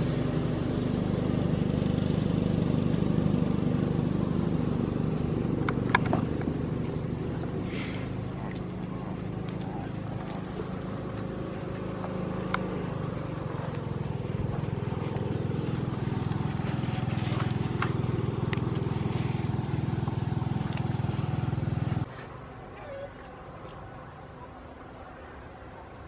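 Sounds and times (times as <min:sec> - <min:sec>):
steady motor-like drone: 0:00.0 - 0:26.0.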